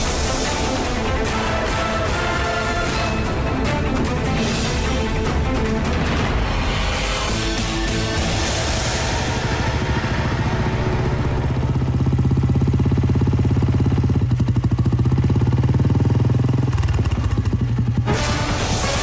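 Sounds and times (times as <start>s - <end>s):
background music: 0.0s - 12.7s, 17.9s - 19.0s
motorcycle engine running: 7.3s - 19.0s.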